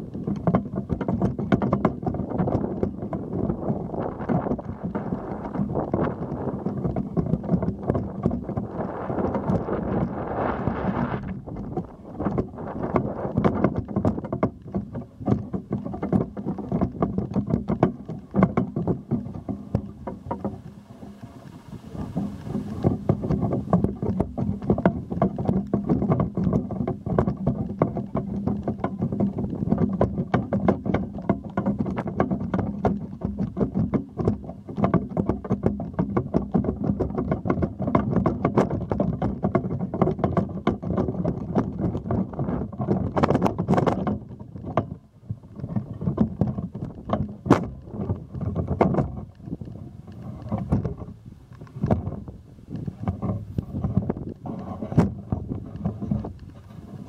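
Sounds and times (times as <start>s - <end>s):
crackling and knocks: 0.0s - 57.0s
wind buffeting microphone: 0.0s - 57.0s.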